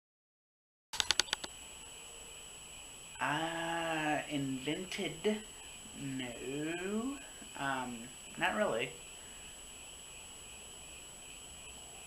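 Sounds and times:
quick clicks: 0:01.0 - 0:01.5
faint high-pitched whine: 0:01.0 - 0:12.0
microphone hiss: 0:01.0 - 0:12.0.

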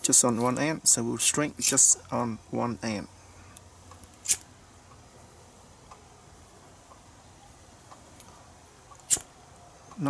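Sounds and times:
lighter strike: 0:04.2 - 0:04.4, 0:09.0 - 0:09.3.

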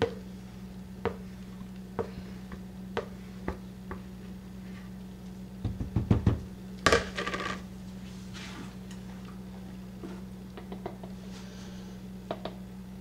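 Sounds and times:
mixing bowl knocking: 0:05.6 - 0:07.2.

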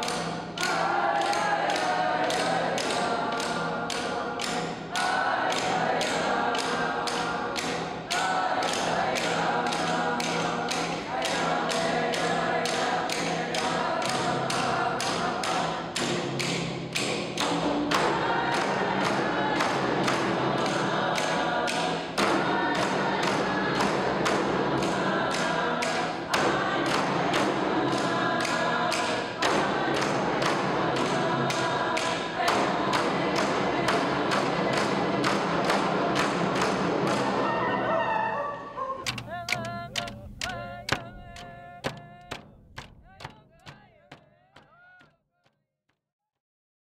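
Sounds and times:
group singing: 0:00.0 - 0:45.0
frame drums struck in unison: 0:39.1 - 0:45.1.

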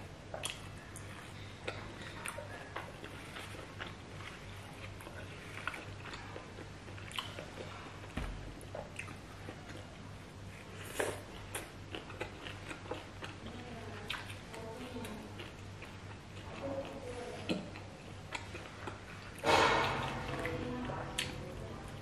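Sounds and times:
close chewing and wet mouth sounds: 0:00.0 - 0:22.0.

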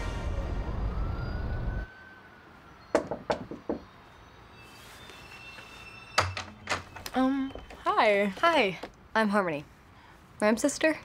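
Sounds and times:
knocking on a door: 0:03.0 - 0:03.9.

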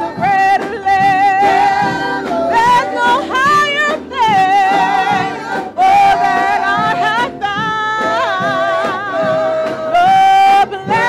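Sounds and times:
gospel choir singing: 0:00.0 - 0:11.0.

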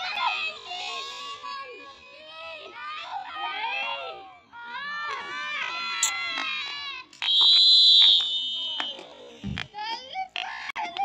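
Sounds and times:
referee's whistle blast: 0:07.2 - 0:09.1.

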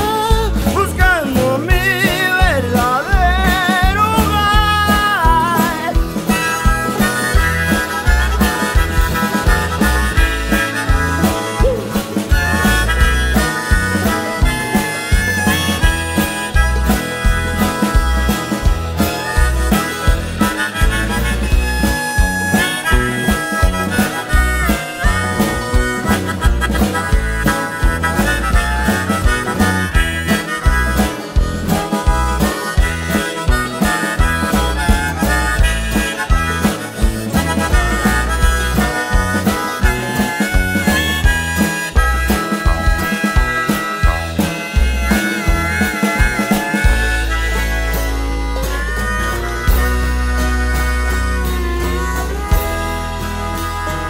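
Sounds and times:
guitar accompaniment: 0:00.0 - 0:54.0
harmonica melody: 0:00.0 - 0:54.0.

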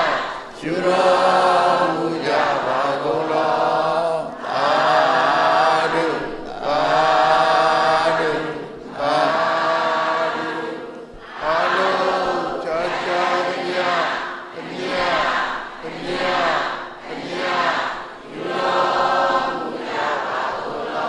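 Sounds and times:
congregation chanting: 0:00.0 - 0:21.0.

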